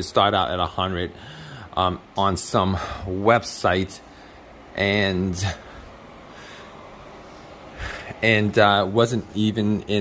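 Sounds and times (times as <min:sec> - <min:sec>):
air conditioner running: 0:00.0 - 0:10.0
intake of breath: 0:01.2 - 0:01.8, 0:04.1 - 0:04.6, 0:05.6 - 0:08.2.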